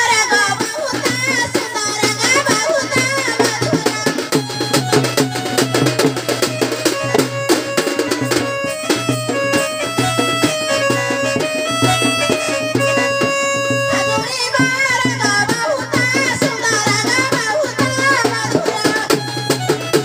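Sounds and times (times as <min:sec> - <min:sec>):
melody instrument long notes: 0:03.4 - 0:15.3, 0:18.6 - 0:20.0.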